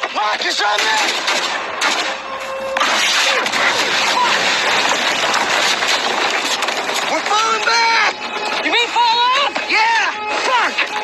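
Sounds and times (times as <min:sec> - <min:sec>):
battle scene soundtrack: 0:00.0 - 0:11.0.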